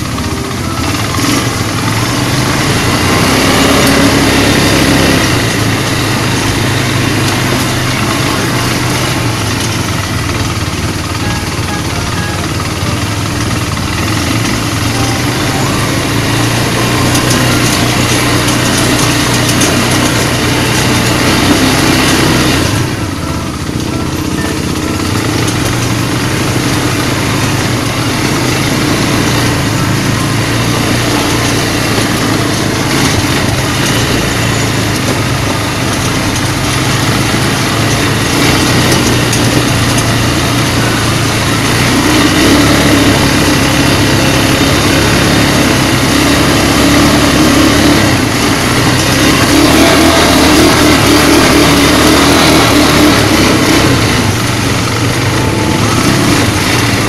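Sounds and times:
atv engines running: 0.0 - 57.0.

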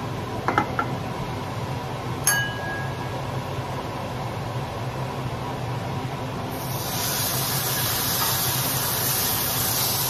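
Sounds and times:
steady low hum: 0.0 - 9.9
metallic clink: 2.3 - 3.1.

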